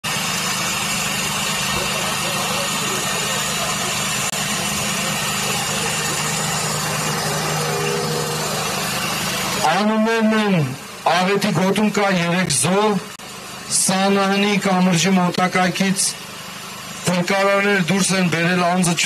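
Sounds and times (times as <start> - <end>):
outdoor crowd murmur: 0.0 - 15.0, 15.6 - 17.8
low hum: 0.3 - 11.1
man speaking over loudspeaker: 9.6 - 13.1, 13.7 - 16.2, 17.1 - 19.0.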